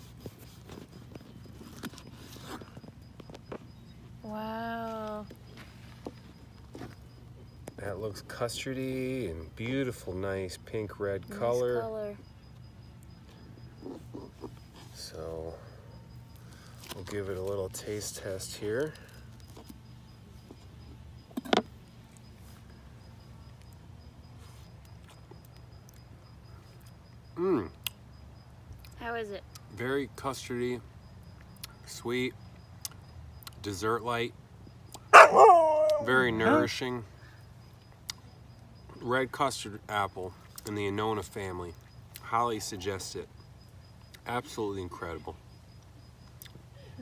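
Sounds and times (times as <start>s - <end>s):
dog whining: 35.1s - 36.7s.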